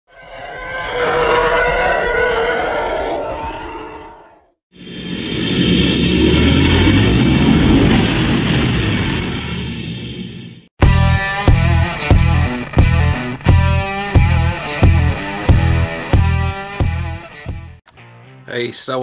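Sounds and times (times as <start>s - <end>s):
rising swoosh sound effect: 4.8s - 9.9s.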